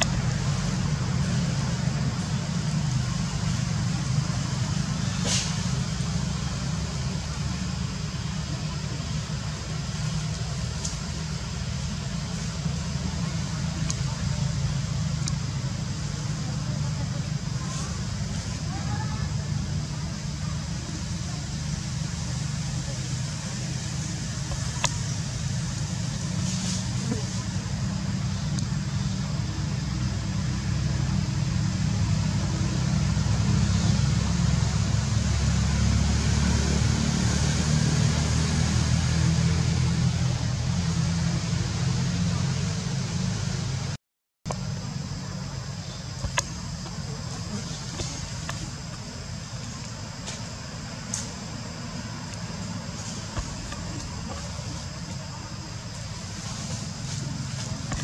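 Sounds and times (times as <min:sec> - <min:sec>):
low outdoor background rumble: 0:00.0 - 0:58.0.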